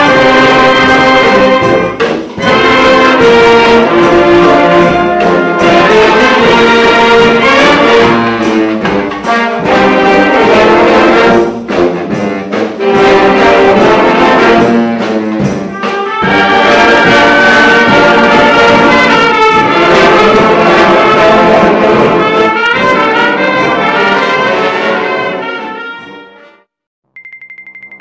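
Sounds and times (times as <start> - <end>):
wind band playing: 0.0 - 26.7.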